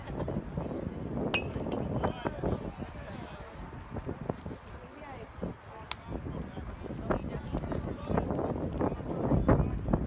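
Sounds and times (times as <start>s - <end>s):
metal bat striking ball: 1.3s - 1.9s.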